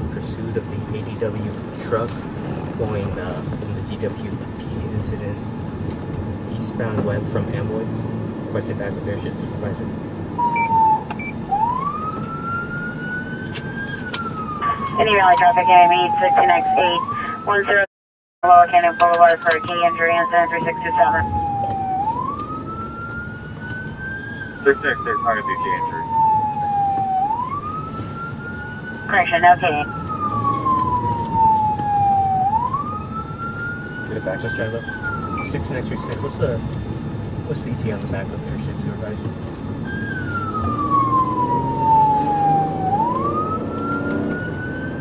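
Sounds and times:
engine and road noise: 0.0s - 45.0s
police siren wailing: 10.3s - 45.0s.

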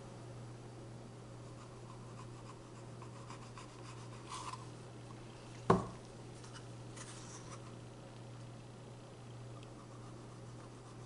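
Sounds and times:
low steady hum: 0.0s - 11.0s
stir stick scraping paper cup: 3.1s - 4.7s, 6.4s - 7.8s.

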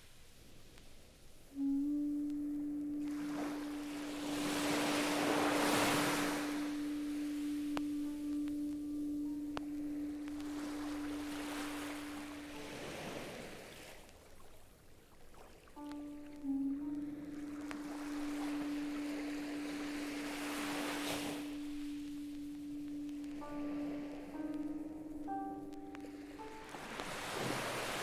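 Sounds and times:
vinyl hiss: 0.0s - 14.9s, 15.7s - 28.0s
ambient music low tone: 1.4s - 14.6s, 15.6s - 28.0s.

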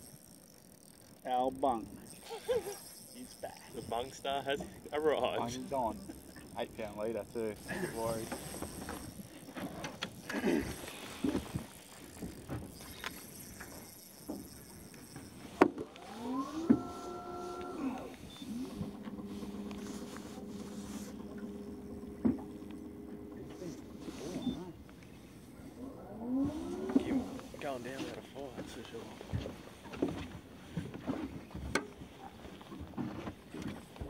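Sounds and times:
electric motor whine: 0.0s - 27.9s.

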